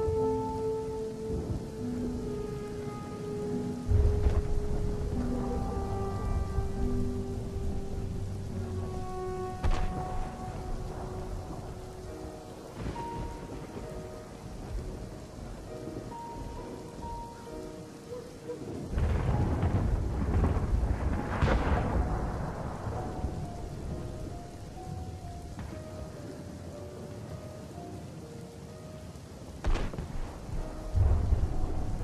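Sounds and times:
slow background music: 0.0 - 32.0
steady noisy hiss: 0.0 - 32.0.

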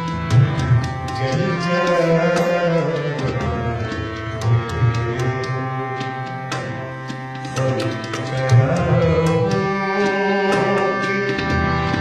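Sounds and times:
harmonium sustained notes: 0.0 - 12.0
tabla strokes: 0.0 - 12.0.

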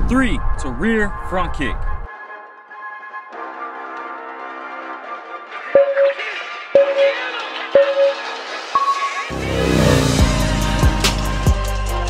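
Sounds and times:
higher timer beep: 5.8 - 6.2, 6.8 - 8.2
short timer beeps: 5.8 - 6.2, 6.8 - 7.2, 7.8 - 8.2
bass-heavy track with drum beat: 10.0 - 12.0.

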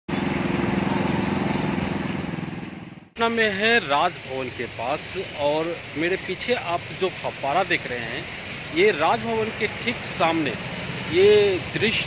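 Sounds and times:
fountain jets splashing: 3.2 - 12.0.

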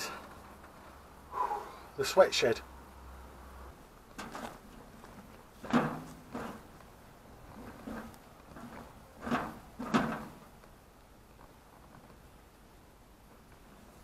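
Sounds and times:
metal wheelbarrow clanking: 4.2 - 6.8, 7.5 - 10.5.

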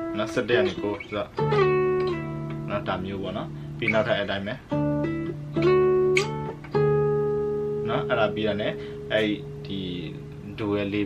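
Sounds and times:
acoustic guitar fingerpicking: 0.0 - 10.6.

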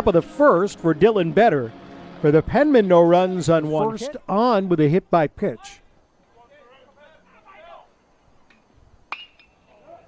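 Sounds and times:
bat striking baseball ping: 9.1 - 9.6.

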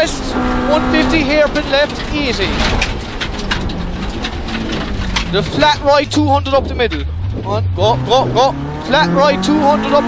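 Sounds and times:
engine and tyre road noise: 0.0 - 10.0.

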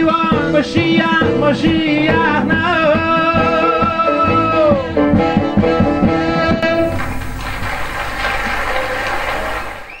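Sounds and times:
audience applauding: 6.8 - 10.0.

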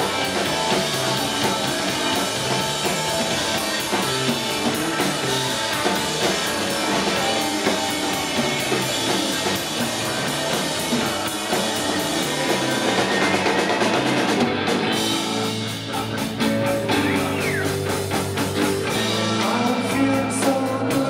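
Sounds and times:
drum kit: 0.0 - 21.0
electric guitar: 0.0 - 21.0
rock band playing: 0.0 - 21.0.

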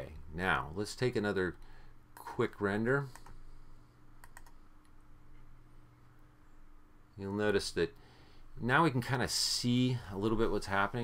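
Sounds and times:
low electrical hum: 0.0 - 11.0
faint computer clicks: 3.0 - 3.4, 4.2 - 5.5.

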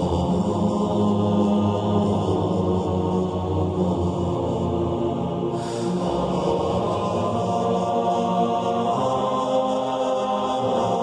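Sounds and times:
chant-like vocal drone music: 0.0 - 11.0.

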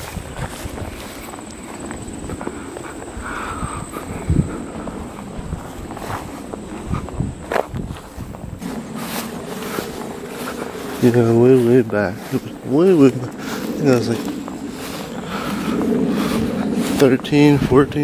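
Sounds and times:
footsteps through grass: 0.0 - 18.0
microphone handling rumble: 0.0 - 18.0
faint high whine: 1.0 - 18.0.

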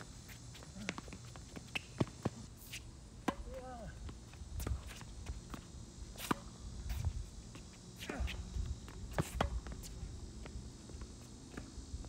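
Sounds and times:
footsteps on hard court: 0.3 - 2.8, 4.1 - 11.7
tennis ball hitting rackets: 3.2 - 3.6, 9.1 - 9.8.

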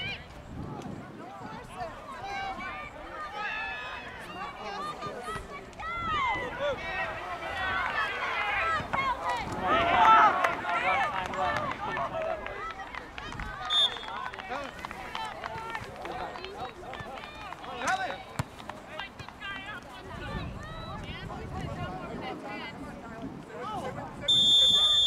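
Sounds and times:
people calling and shouting: 0.0 - 25.0
short high whistle blast: 24.3 - 25.0.

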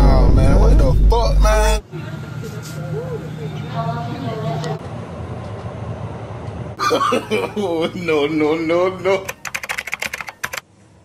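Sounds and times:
music with heavy bass: 0.0 - 1.8
low station hum: 0.0 - 9.4.

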